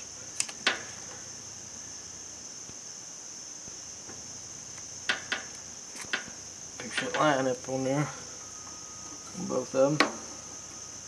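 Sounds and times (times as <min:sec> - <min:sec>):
steady high-pitched tone: 0:06.8 - 0:11.0.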